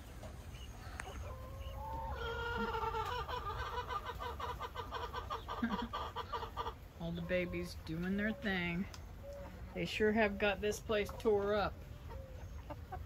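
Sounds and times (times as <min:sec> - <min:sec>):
chicken clucking: 0:00.0 - 0:13.0.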